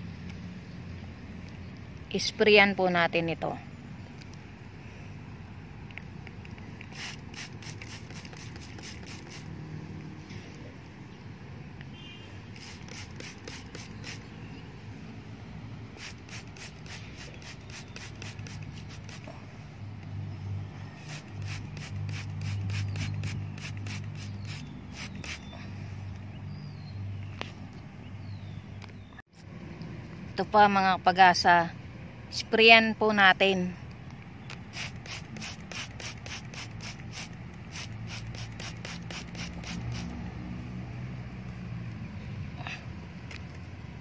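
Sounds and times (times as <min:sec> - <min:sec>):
spray bottle pumps hissing: 0:06.4 - 0:09.5, 0:12.4 - 0:14.3, 0:16.0 - 0:19.3, 0:21.0 - 0:25.5, 0:34.7 - 0:40.2.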